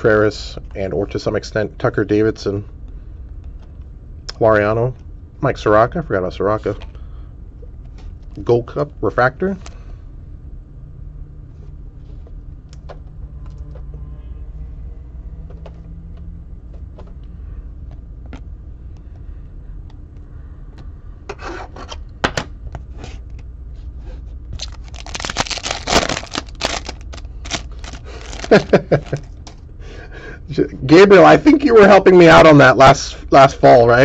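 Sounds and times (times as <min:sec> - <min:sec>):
foil pack tearing open: 0:24.5 - 0:29.3
cards and foil packs handled: 0:24.5 - 0:29.6.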